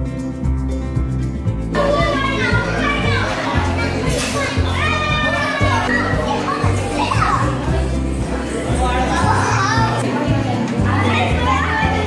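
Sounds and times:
children chattering and calling out: 1.6s - 12.0s.

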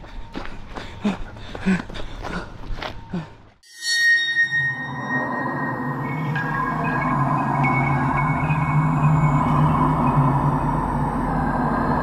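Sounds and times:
quick footsteps on dirt: 0.0s - 3.6s
bell-like chime ringing: 3.6s - 12.0s
low drone music: 4.0s - 12.0s.

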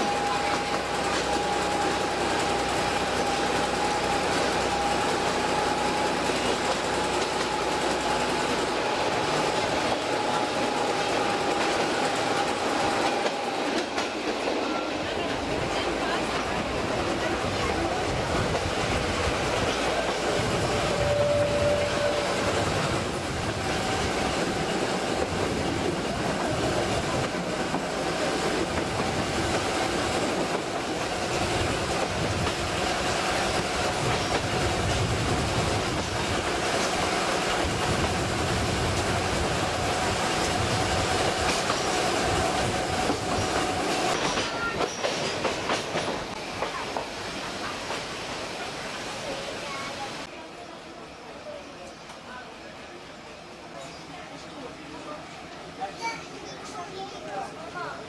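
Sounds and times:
train wheels clickety-clack: 0.0s - 48.2s.

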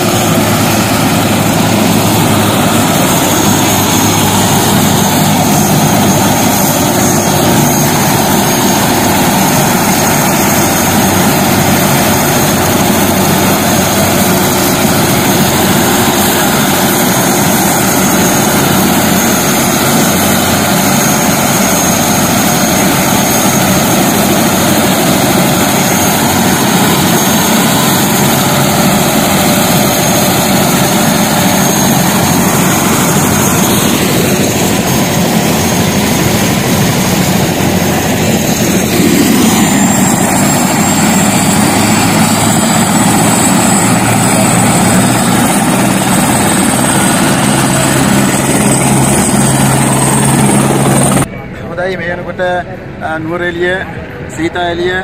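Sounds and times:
helicopter rotor and engine noise: 0.0s - 55.0s
high turbine whine: 0.0s - 55.0s.

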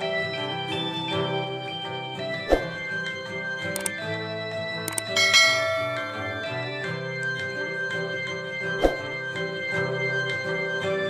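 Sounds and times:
reedy keyboard chords: 0.0s - 11.0s
strummed nylon-string guitar: 0.0s - 11.0s
short clicks: 3.6s - 4.2s, 4.8s - 5.3s.

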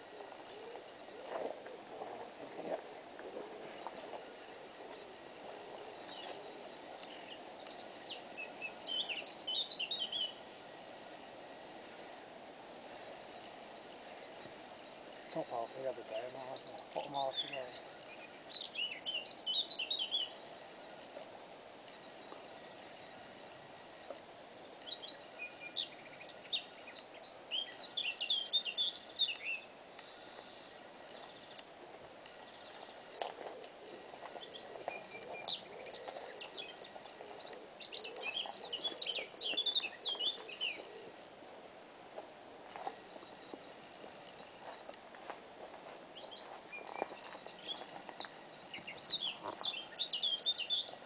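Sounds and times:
small songbird singing: 0.0s - 41.4s, 46.1s - 51.0s
faint outdoor background hiss: 0.0s - 51.0s.

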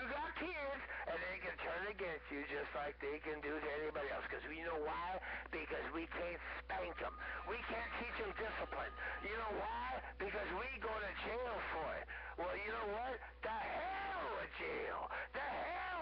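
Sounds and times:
steady low hum: 0.0s - 16.0s
voices over two-way radio: 0.0s - 16.0s.

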